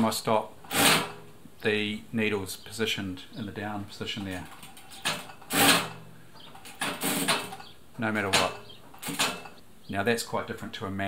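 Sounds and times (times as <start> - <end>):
sewing machine sewing: 0.7 - 1.2, 4.6 - 6.0, 6.7 - 7.6.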